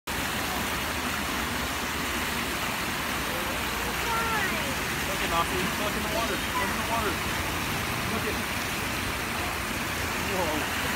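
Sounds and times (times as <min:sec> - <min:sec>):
fountain jet splashing into pool: 0:00.1 - 0:10.9.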